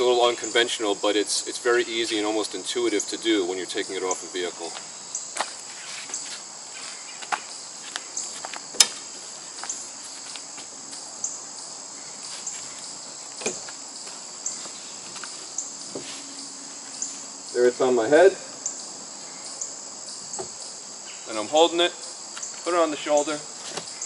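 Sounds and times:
insect drone: 0:00.0 - 0:24.0
canoe knocking and scraping: 0:15.9 - 0:16.2.

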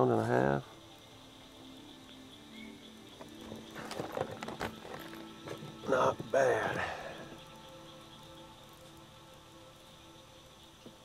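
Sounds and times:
clicks and knocks in a boat: 0:03.4 - 0:05.6.

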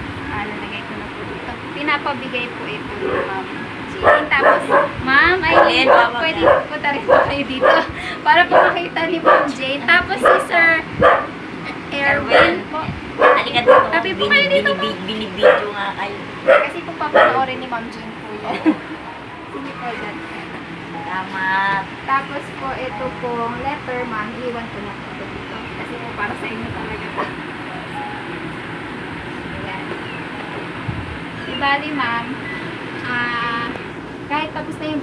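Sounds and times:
people talking: 0:00.0 - 0:28.2, 0:29.3 - 0:30.1, 0:30.9 - 0:35.0
dog barking: 0:03.0 - 0:03.4, 0:04.0 - 0:07.9, 0:08.5 - 0:09.6, 0:10.2 - 0:11.4, 0:12.2 - 0:12.6, 0:13.2 - 0:14.0, 0:15.4 - 0:15.8, 0:16.4 - 0:17.5.

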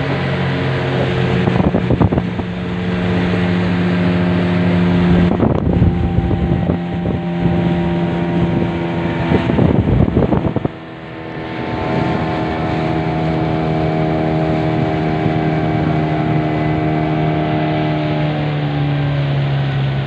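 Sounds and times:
boat motor running: 0:00.0 - 0:20.0
wind buffeting microphone: 0:00.0 - 0:20.0.

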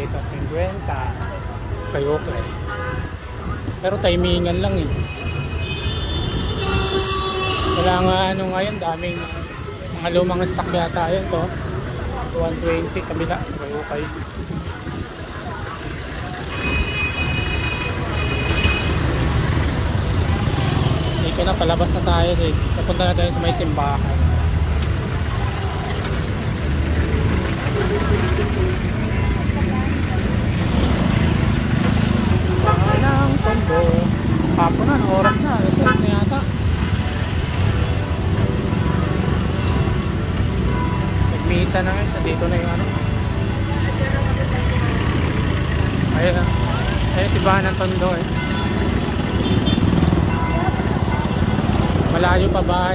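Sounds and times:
street traffic noise: 0:00.0 - 0:52.9.

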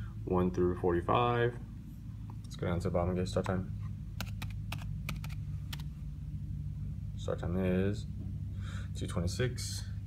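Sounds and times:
typing on computer keyboard: 0:04.2 - 0:05.9.

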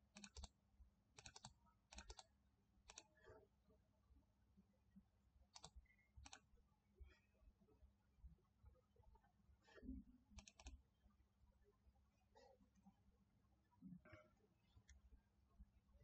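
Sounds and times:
computer mouse clicking: 0:00.0 - 0:00.6, 0:01.2 - 0:02.3, 0:02.9 - 0:03.3, 0:05.5 - 0:06.5, 0:10.4 - 0:10.8.

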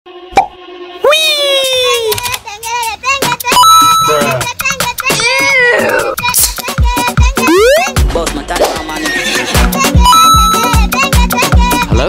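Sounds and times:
tone sliding down in pitch: 0:07.5 - 0:08.0.

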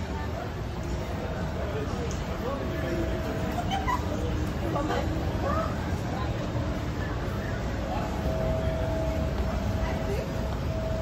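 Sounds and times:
distant indistinct voices: 0:00.0 - 0:11.0
faint steady hum: 0:00.0 - 0:11.0
low rumble of busy space: 0:00.0 - 0:11.0.

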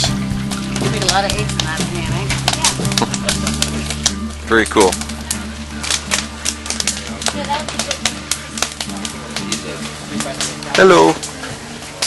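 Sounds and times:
wood fire crackling and popping: 0:00.0 - 0:12.0.

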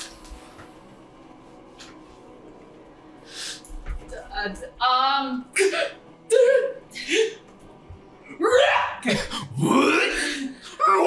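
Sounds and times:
people making wordless vocal sounds: 0:08.5 - 0:11.0.

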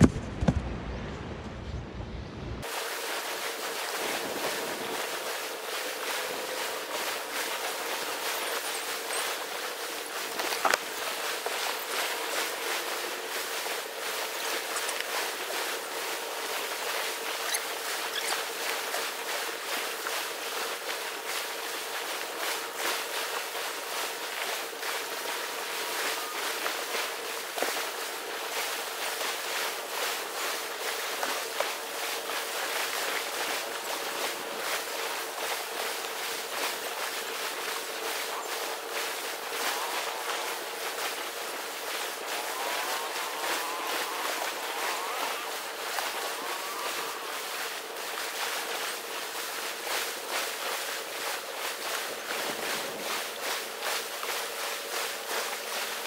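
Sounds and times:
faint steady hum: 0:00.0 - 0:56.0
footsteps in sand: 0:02.6 - 0:56.0
surf washing on beach: 0:02.6 - 0:56.0.

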